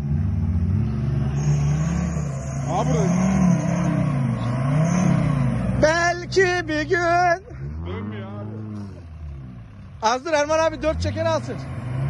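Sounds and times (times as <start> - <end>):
car engine revving: 0.0 - 12.0.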